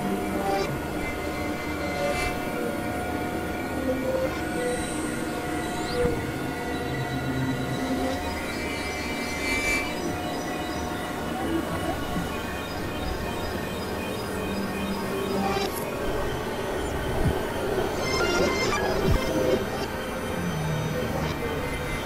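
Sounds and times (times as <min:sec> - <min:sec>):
electronic drone music: 0:00.0 - 0:22.0.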